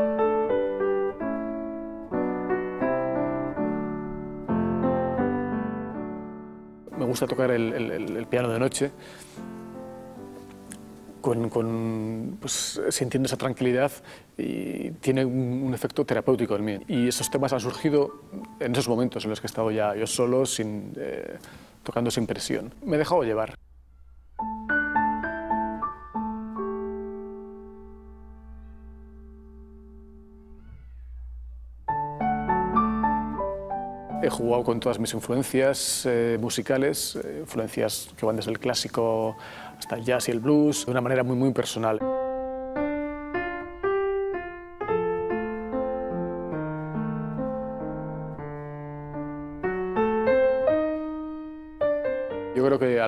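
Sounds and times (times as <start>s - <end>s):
grand piano chord ringing: 0.0s - 12.2s, 16.2s - 20.6s, 22.3s - 36.2s.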